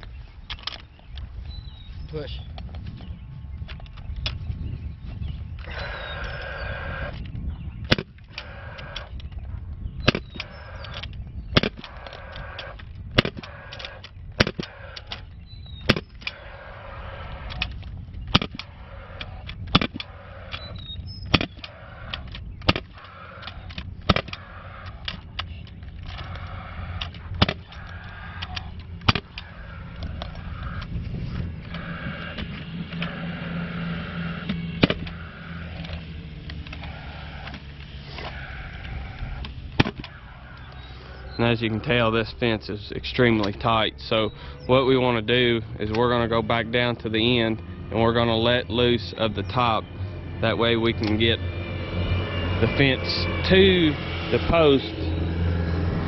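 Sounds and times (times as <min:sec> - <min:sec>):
power stapler firing: 0:07.9 - 0:09.0, 0:13.2 - 0:15.1, 0:18.3 - 0:18.7, 0:19.5 - 0:20.7, 0:21.3 - 0:23.1, 0:27.4 - 0:27.8, 0:39.8 - 0:40.2.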